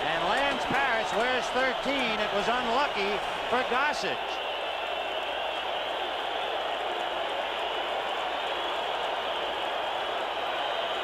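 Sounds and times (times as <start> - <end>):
large crowd cheering: 0.0 - 11.0.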